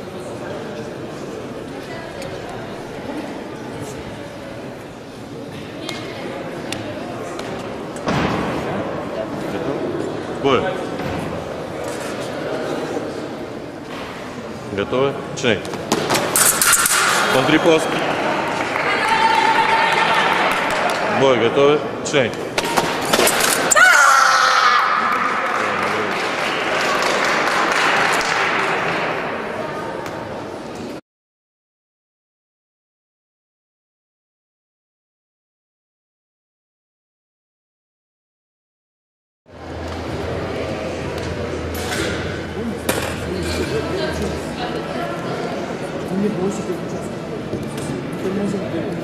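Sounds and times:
indistinct talking echoing: 0.0 - 31.0, 39.5 - 49.0
murmur of a sports hall: 0.0 - 31.0, 39.5 - 49.0.

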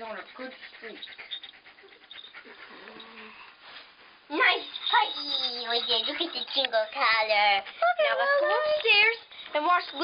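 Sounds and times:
dog panting: 0.0 - 3.6, 4.4 - 10.0
collar bells jingling: 4.3 - 7.5, 8.6 - 10.0.

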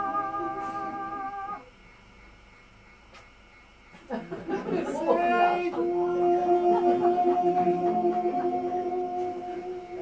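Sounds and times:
man singing high note: 0.0 - 1.7, 4.9 - 10.0
faint stage room noise: 0.0 - 10.0.

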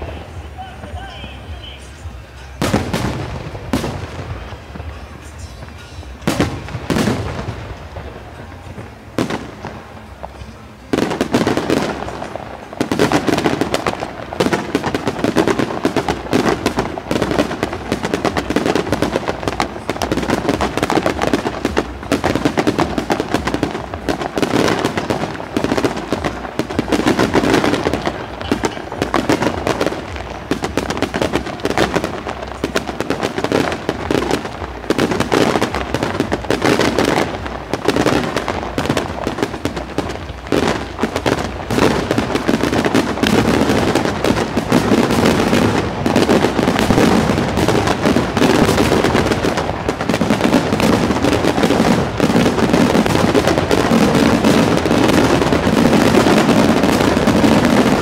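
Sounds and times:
rapid firework bangs and crackle: 0.0 - 58.0.

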